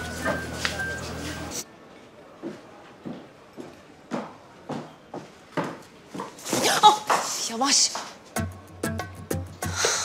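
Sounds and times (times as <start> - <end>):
heeled footsteps on steps: 2.4 - 6.4.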